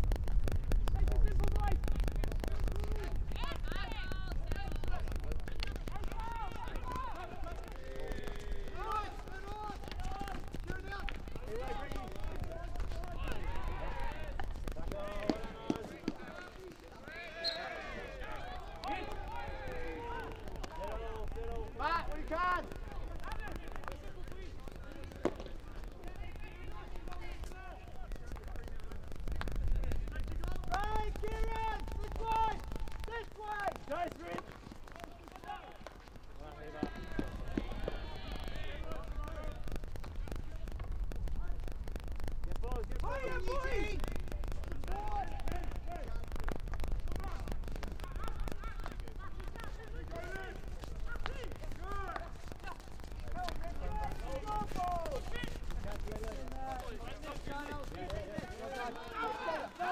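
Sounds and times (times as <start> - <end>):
players shouting calls: 2.6 - 41.8, 42.5 - 59.9.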